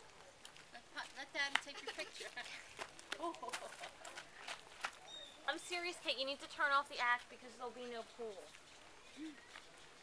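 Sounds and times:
footsteps on gravel: 0:00.4 - 0:05.1.

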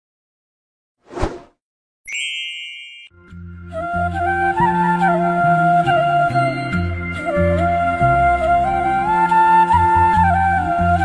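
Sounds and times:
short whoosh: 0:01.1 - 0:01.5
bell ding: 0:02.1 - 0:03.2
music with low drone and melody: 0:03.1 - 0:11.0.

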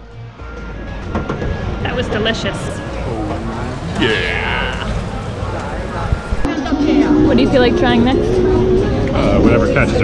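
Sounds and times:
outdoor street noise: 0:00.0 - 0:10.0.

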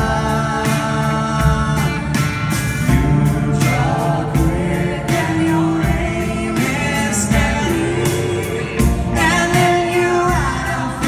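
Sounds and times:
person singing: 0:00.0 - 0:02.3, 0:02.9 - 0:11.0
drums: 0:00.0 - 0:11.0
electric guitar: 0:00.0 - 0:11.0
live band playing: 0:00.0 - 0:11.0.

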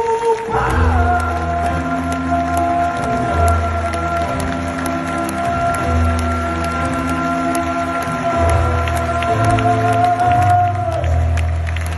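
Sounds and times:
live rock music: 0:00.0 - 0:11.9.

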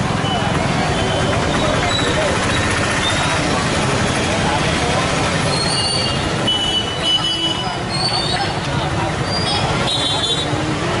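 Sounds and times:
crowd chatter: 0:00.0 - 0:11.0
road traffic: 0:00.0 - 0:11.0.

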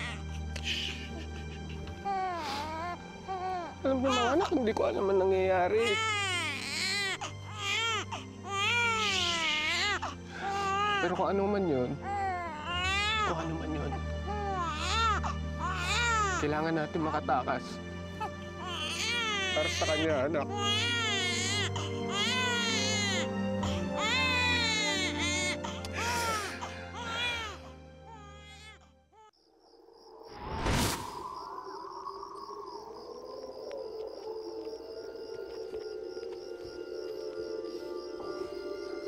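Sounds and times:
baby crying: 0:00.0 - 0:01.1, 0:01.9 - 0:04.6, 0:05.7 - 0:11.2, 0:12.0 - 0:16.4, 0:18.2 - 0:29.3
background music: 0:00.0 - 0:29.2, 0:33.2 - 0:39.0.

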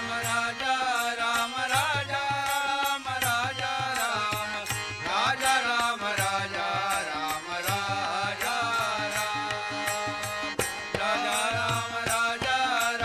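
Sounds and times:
harmonium chords: 0:00.0 - 0:13.0
men singing devotional song: 0:00.0 - 0:13.0
tabla beat: 0:00.0 - 0:13.0.

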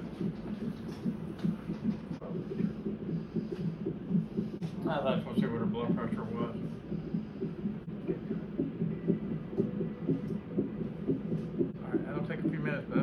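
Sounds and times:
doppler heartbeat whooshing pulse: 0:00.0 - 0:13.0.

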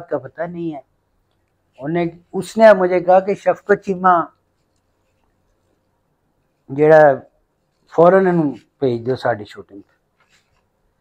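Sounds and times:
man speaking: 0:00.0 - 0:00.9, 0:01.7 - 0:04.4, 0:06.6 - 0:10.0.

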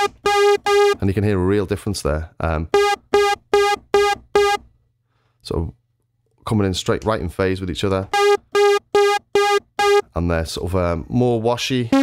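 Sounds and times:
synthesizer repeated notes: 0:00.0 - 0:01.0, 0:02.7 - 0:04.6, 0:08.1 - 0:10.0.

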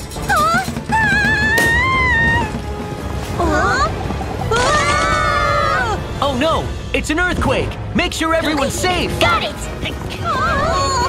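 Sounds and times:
background music: 0:00.0 - 0:11.0
high sliding cries of fright: 0:03.4 - 0:06.0.

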